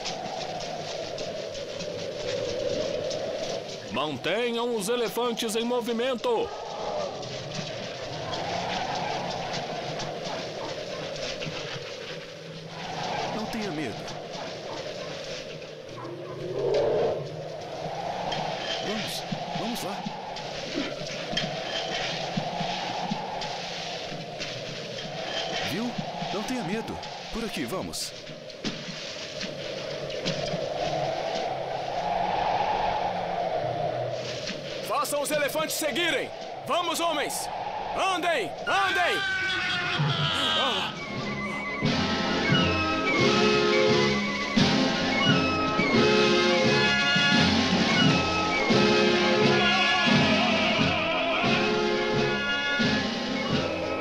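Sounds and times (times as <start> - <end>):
howling blizzard wind: 0.0 - 54.0
indistinct men's voices: 25.5 - 28.2, 34.8 - 41.1, 49.2 - 54.0
men shouting: 38.0 - 41.1, 49.4 - 52.8.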